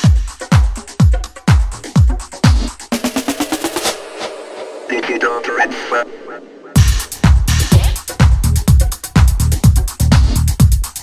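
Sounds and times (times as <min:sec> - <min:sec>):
kick drum: 0:00.0 - 0:03.0, 0:06.8 - 0:11.0
house music: 0:00.0 - 0:11.0
rising drum roll: 0:02.9 - 0:08.8
spoken vocal sample: 0:04.9 - 0:06.8.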